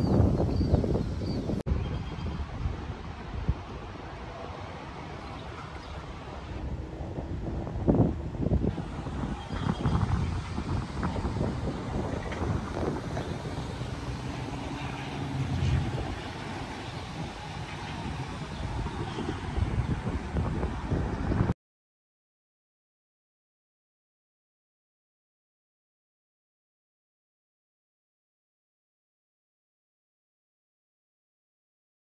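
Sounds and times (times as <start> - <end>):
wind buffeting microphone: 0.0 - 21.6.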